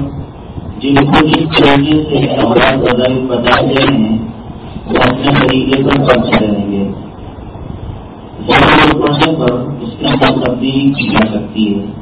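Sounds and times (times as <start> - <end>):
steady low rumble: 0.0 - 12.0
man lecturing: 0.8 - 7.1, 8.4 - 12.0.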